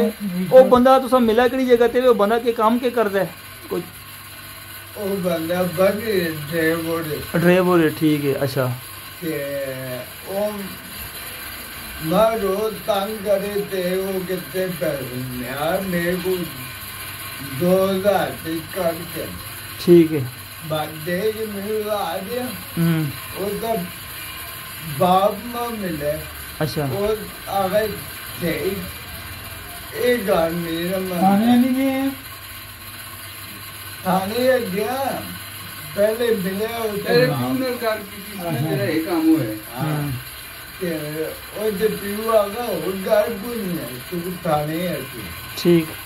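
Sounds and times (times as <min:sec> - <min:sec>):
low hum with faint hiss: 0:00.0 - 0:04.0, 0:34.0 - 0:46.0
man's voice: 0:37.0 - 0:40.2.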